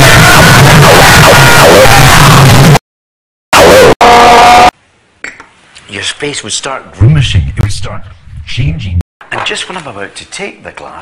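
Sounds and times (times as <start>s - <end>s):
loud distorted shouting: 0.0s - 2.8s, 3.5s - 4.8s.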